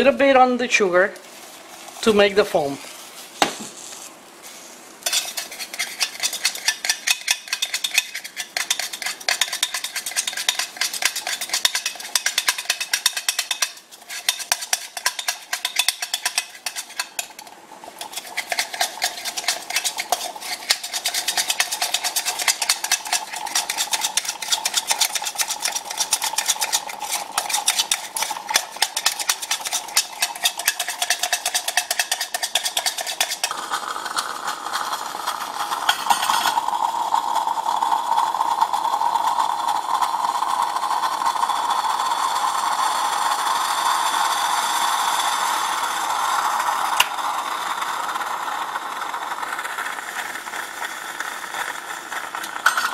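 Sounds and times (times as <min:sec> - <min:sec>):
spoon clinking in metal pitcher: 0:05.1 - 0:33.5, 0:35.8 - 0:36.7, 0:52.6 - 0:52.9.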